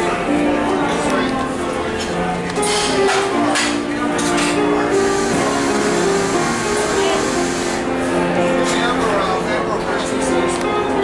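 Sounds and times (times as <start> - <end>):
murmur of background voices: 0.0 - 11.0
piano music: 0.0 - 11.0.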